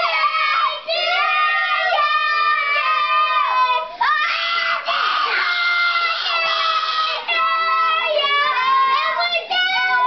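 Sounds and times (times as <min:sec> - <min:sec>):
boys shouting and yelling: 0:00.0 - 0:10.0.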